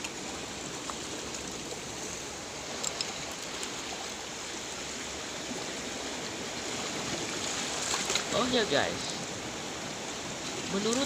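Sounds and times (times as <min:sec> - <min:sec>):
small waves breaking on rocks: 0:00.0 - 0:11.0.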